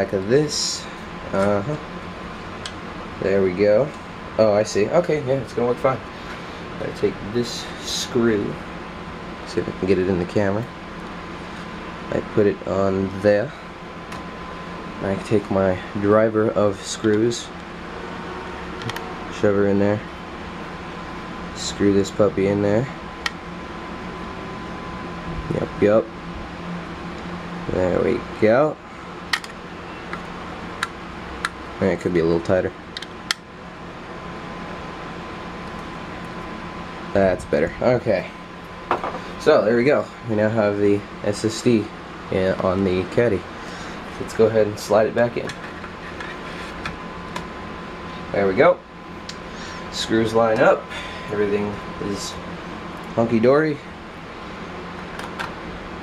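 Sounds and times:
faint hum: 0:00.0 - 0:56.0
fan noise: 0:00.0 - 0:56.0.

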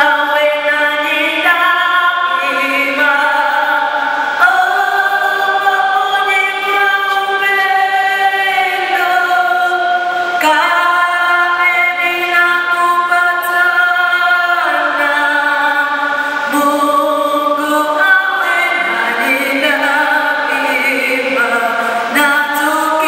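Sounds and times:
choir singing held chords: 0:00.0 - 0:23.0.

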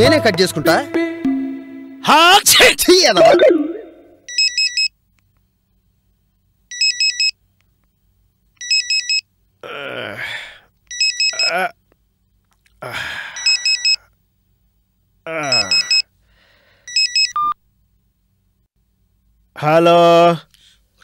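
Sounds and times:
phone ringtone beeping: 0:03.4 - 0:04.9, 0:06.7 - 0:07.4, 0:08.6 - 0:09.2, 0:10.9 - 0:11.5, 0:13.4 - 0:14.0, 0:15.5 - 0:16.0, 0:16.9 - 0:17.6
man groaning sleepily: 0:09.6 - 0:10.6, 0:11.4 - 0:11.8, 0:12.8 - 0:13.4, 0:15.2 - 0:15.9.

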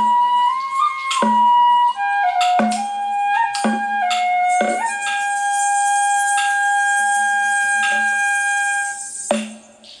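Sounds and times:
bamboo flute long note: 0:00.0 - 0:09.7
percussive strikes: 0:00.0 - 0:10.0.

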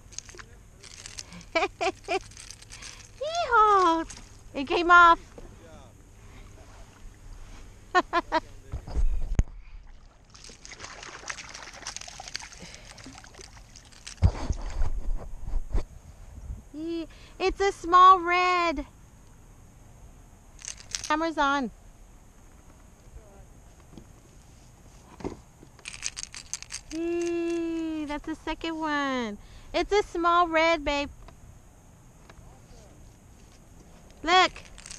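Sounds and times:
sharp clicks and rattles: 0:00.0 - 0:04.7, 0:11.5 - 0:14.6, 0:20.6 - 0:21.3, 0:25.7 - 0:28.2, 0:33.5 - 0:34.9
fish splashing at water surface: 0:09.9 - 0:14.2.

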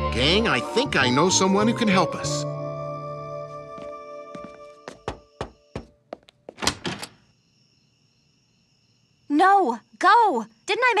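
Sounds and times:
knuckles knocking on wooden door: 0:04.9 - 0:06.0.

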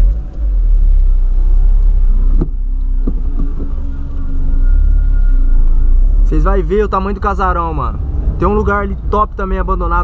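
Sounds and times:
car driving rumble inside cabin: 0:00.0 - 0:10.0.

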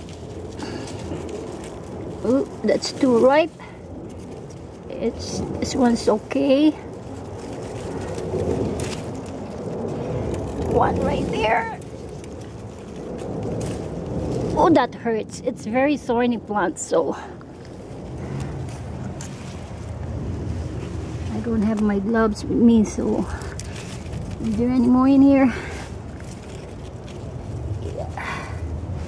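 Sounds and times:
leaves rustling: 0:00.0 - 0:29.0
steady low rumble: 0:00.0 - 0:29.0.

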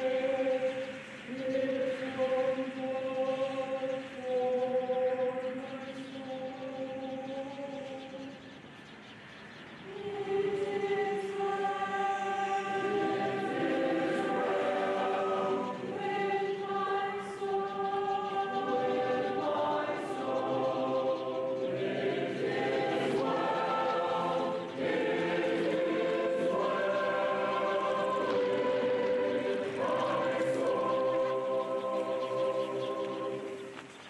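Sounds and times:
choir singing sustained chords: 0:00.0 - 0:34.0.

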